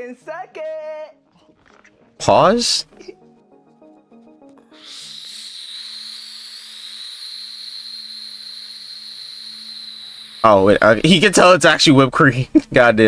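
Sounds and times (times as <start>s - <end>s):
gas hissing from can: 4.7s - 11.5s.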